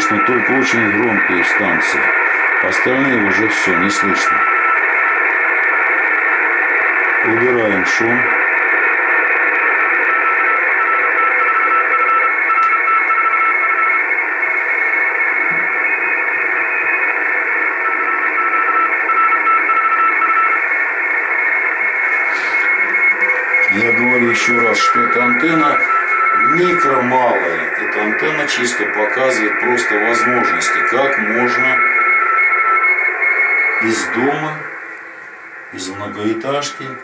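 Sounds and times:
person speaking over radio: 0:00.0 - 0:04.6, 0:07.1 - 0:08.4, 0:22.3 - 0:32.3, 0:33.8 - 0:34.8, 0:35.7 - 0:37.0
morse code tones: 0:00.0 - 0:37.0
radio band hiss: 0:00.0 - 0:37.0.

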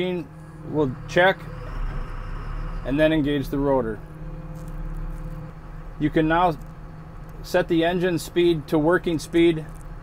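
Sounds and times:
diesel engine idling: 0:00.0 - 0:10.0
faint machine whine: 0:00.0 - 0:10.0.

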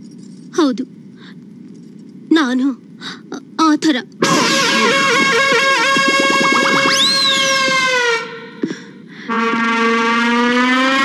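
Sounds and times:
pitched swoop up and down: 0:04.2 - 0:08.6
long held note: 0:04.2 - 0:11.0.

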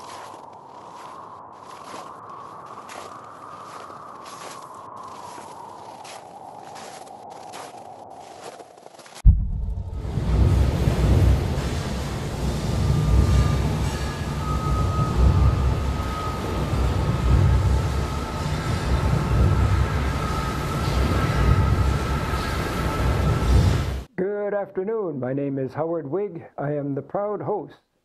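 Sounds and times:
deep steady rumble: 0:09.2 - 0:24.1.

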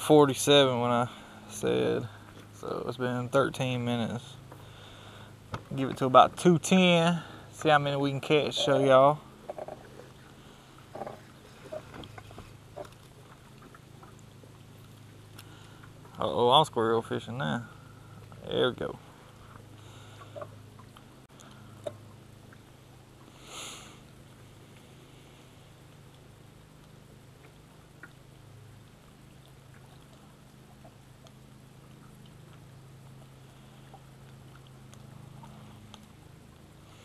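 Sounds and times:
low boat hum: 0:00.0 - 0:37.0.

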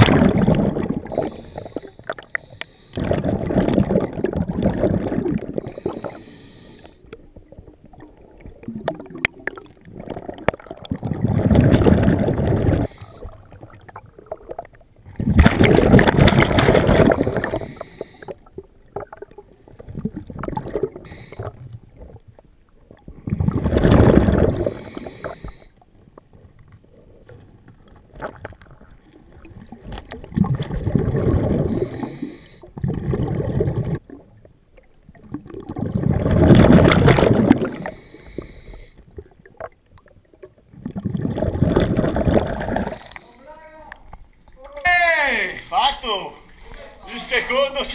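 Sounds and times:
exhaled bubbles rumbling underwater: 0:00.0 - 0:43.3
regulator hissing: 0:01.1 - 0:03.0, 0:05.7 - 0:07.0.

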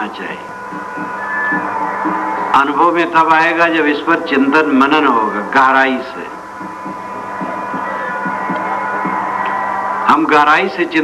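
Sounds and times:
steady high hum: 0:00.0 - 0:11.0.

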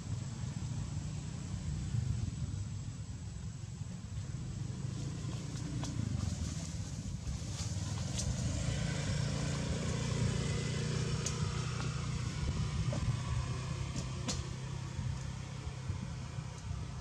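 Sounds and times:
engine humming: 0:00.0 - 0:17.0.

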